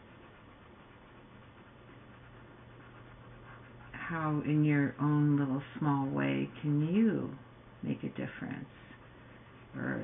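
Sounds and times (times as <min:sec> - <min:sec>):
pencil shading on paper: 0:00.0 - 0:04.9
low electrical hum: 0:00.0 - 0:10.0.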